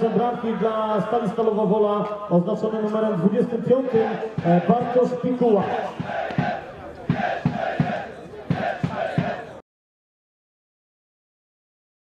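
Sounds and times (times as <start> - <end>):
crowd chanting: 3.7 - 9.6
low rhythmic thumps: 3.9 - 9.6.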